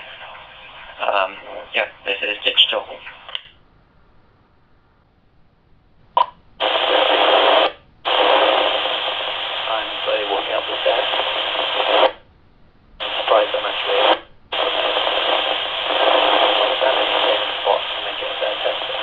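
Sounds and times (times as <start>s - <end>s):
faint speech over radio: 0.0s - 3.4s, 6.6s - 12.1s, 13.0s - 19.0s
radio static hiss: 0.0s - 3.6s, 6.2s - 12.3s, 13.0s - 19.0s.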